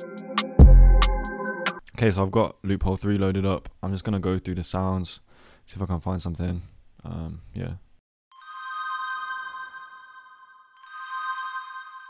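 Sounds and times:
bright synth chord: 0.0 - 1.8.

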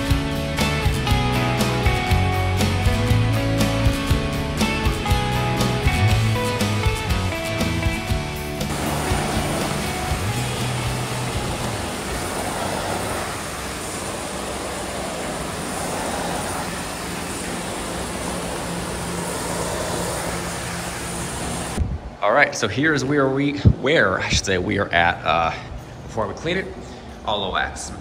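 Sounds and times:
guitar music: 0.0 - 14.2
floor-cleaning machine running: 0.1 - 21.8.

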